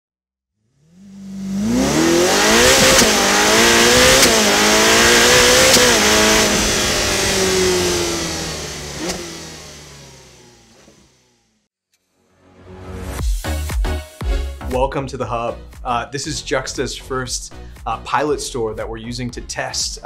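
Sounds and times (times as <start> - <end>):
car engine accelerating: 0.6 - 11.7.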